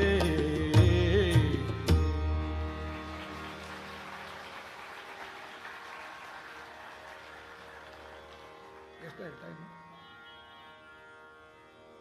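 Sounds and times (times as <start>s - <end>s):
tanpura drone: 1.9s - 12.0s.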